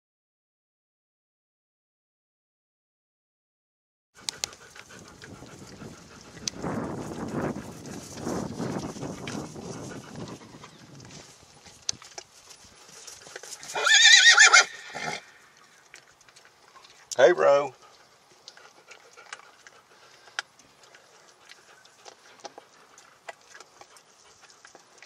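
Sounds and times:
horse hooves on dry grass: 0:04.2 - 0:17.1, 0:17.7 - 0:25.0
horse whinnying: 0:13.6 - 0:15.4.

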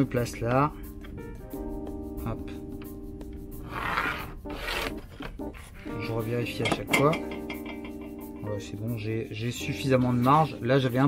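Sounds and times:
pencil scratching on plastic sheet: 0:03.6 - 0:06.0.

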